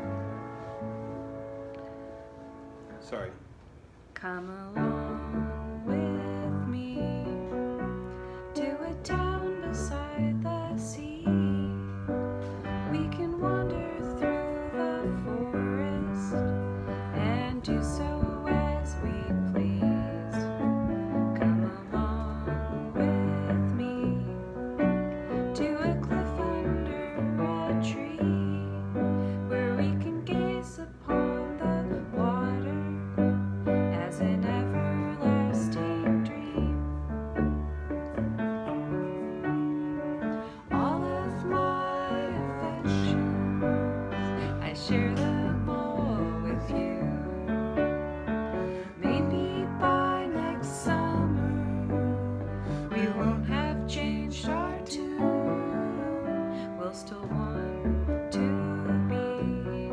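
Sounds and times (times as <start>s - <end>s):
piano chords: 0.0s - 59.9s
woman singing: 4.2s - 37.6s, 38.8s - 59.9s
acoustic guitar: 4.4s - 59.9s.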